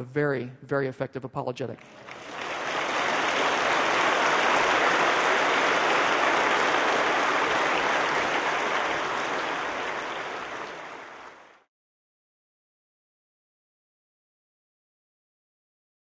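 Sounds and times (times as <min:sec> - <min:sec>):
audience applauding: 0:01.8 - 0:11.7.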